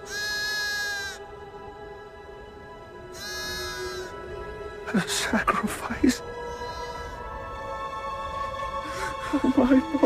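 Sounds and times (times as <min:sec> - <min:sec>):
ram bleating: 0:00.0 - 0:01.2, 0:03.1 - 0:04.1, 0:06.5 - 0:07.2
background music: 0:00.0 - 0:10.0.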